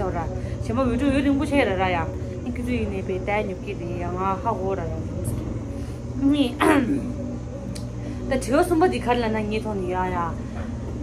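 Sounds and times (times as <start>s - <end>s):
woman speaking: 0.0s - 5.5s, 6.2s - 7.2s, 8.2s - 10.5s
low background hum: 0.0s - 11.0s.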